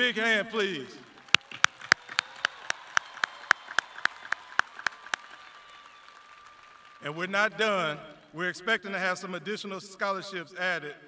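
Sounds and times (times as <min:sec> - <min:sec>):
faint crowd clapping: 0:01.0 - 0:08.3
sharp close claps: 0:01.2 - 0:07.0.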